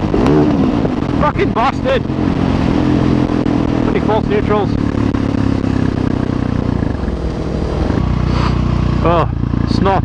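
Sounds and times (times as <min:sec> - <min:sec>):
wind noise on microphone: 0:00.0 - 0:08.8
motorcycle engine running: 0:00.0 - 0:10.0.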